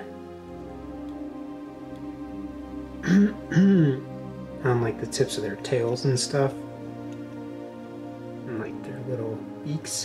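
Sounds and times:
soft background music: 0.0s - 10.0s
person clearing throat: 3.0s - 4.0s.

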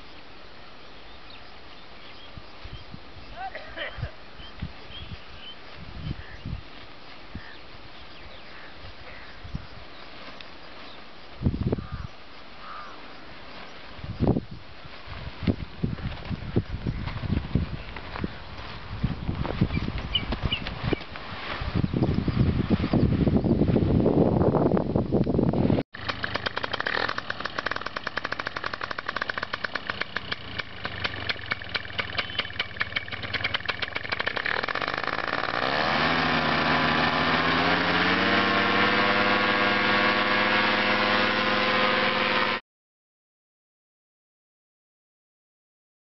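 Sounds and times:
small engine running and revving: 26.0s - 42.6s.

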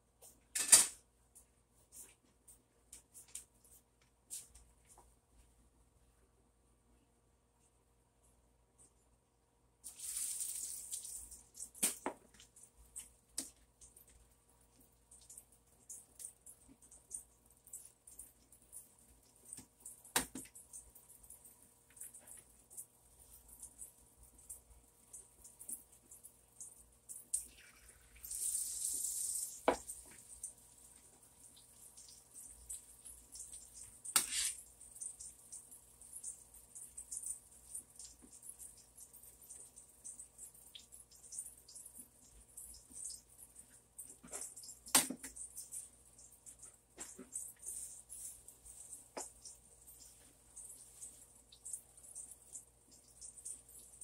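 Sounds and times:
eggplant sizzling in a skillet: 9.8s - 12.3s, 27.4s - 35.3s.

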